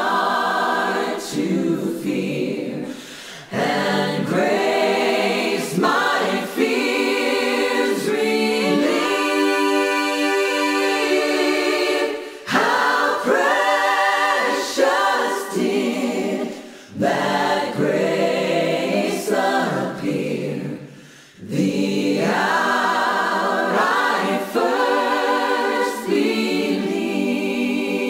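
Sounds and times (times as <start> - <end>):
unaccompanied choir singing: 0.0 - 28.0.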